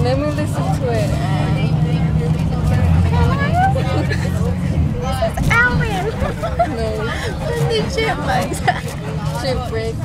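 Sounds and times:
bus engine rumble: 0:00.0 - 0:10.0
road noise: 0:00.0 - 0:10.0
voices: 0:00.0 - 0:10.0.

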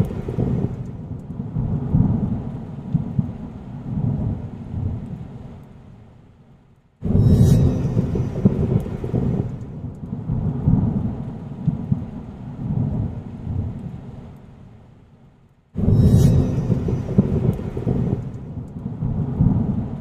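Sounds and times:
sharp thunder crack: 0:00.0 - 0:01.0, 0:07.0 - 0:11.2, 0:15.8 - 0:20.0
thunder rumbling: 0:00.0 - 0:05.6, 0:07.0 - 0:14.4, 0:15.8 - 0:20.0
steady rain: 0:00.0 - 0:20.0.

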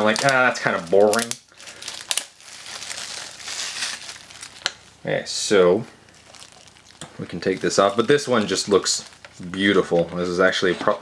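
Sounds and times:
plastic wrap crinkling: 0:00.0 - 0:10.7.

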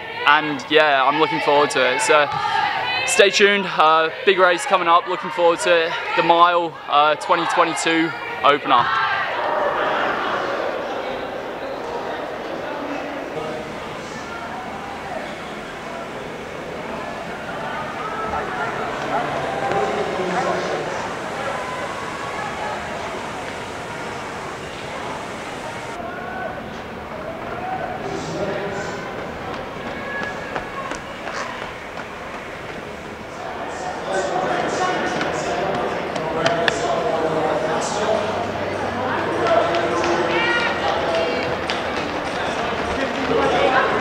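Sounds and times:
indistinct chatter of voices: 0:00.0 - 0:44.0.

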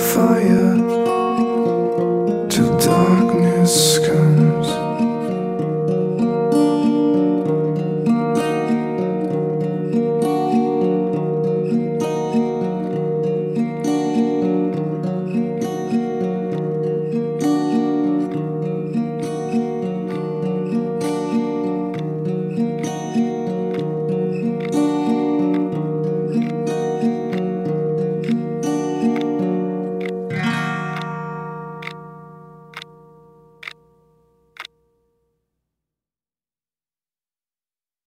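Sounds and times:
strummed acoustic guitar: 0:00.0 - 0:34.7
sharp clicks: 0:30.0 - 0:31.2, 0:31.8 - 0:32.0, 0:32.7 - 0:32.9.

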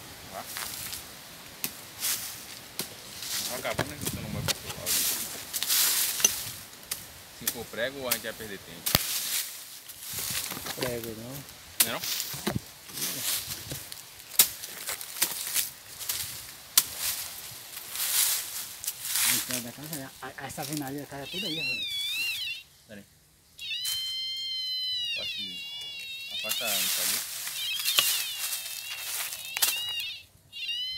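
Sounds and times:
leaves scraping and rustling: 0:00.0 - 0:22.6, 0:25.2 - 0:30.2
metal detector high tone: 0:21.1 - 0:22.7, 0:23.6 - 0:30.9.

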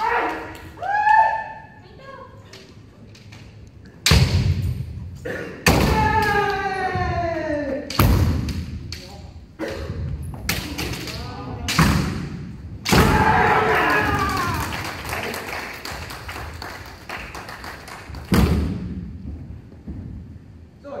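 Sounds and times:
people shouting: 0:00.0 - 0:01.7, 0:05.7 - 0:08.3, 0:12.8 - 0:14.8.

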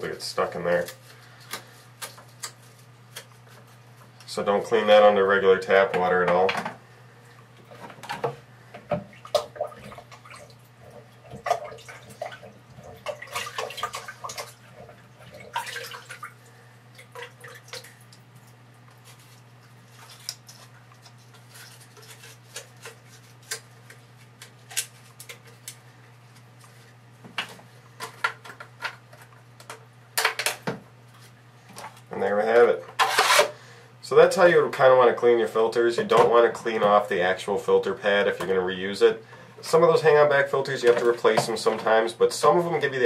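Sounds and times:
water dripping and splashing: 0:09.0 - 0:22.2.

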